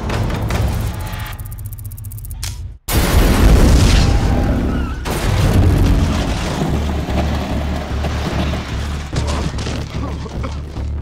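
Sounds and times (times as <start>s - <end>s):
action film soundtrack: 0.0s - 11.0s.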